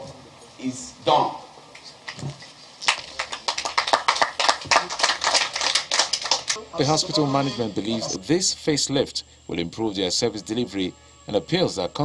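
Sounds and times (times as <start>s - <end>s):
audience applauding: 2.8s - 7.4s.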